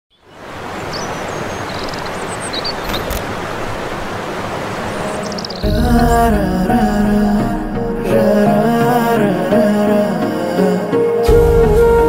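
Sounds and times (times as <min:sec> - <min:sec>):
waterfall rushing: 0:00.2 - 0:12.0
music: 0:05.6 - 0:12.0.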